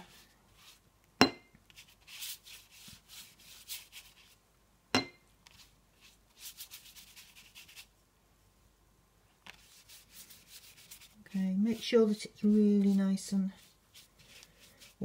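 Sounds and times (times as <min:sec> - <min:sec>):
brush sweeping over paper: 0:00.0 - 0:00.9, 0:01.6 - 0:04.4, 0:05.4 - 0:08.0, 0:09.4 - 0:15.0.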